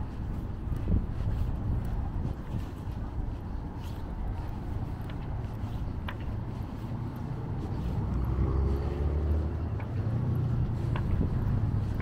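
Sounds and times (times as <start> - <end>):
road traffic rumble: 0.0 - 12.0
passing vehicle engine: 6.6 - 12.0.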